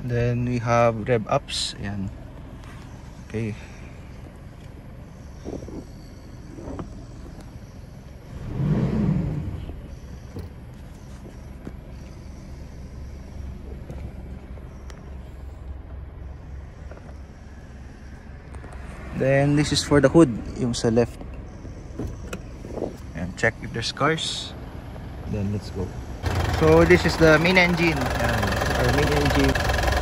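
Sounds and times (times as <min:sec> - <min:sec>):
diesel engine idling and revving: 0:00.0 - 0:30.0.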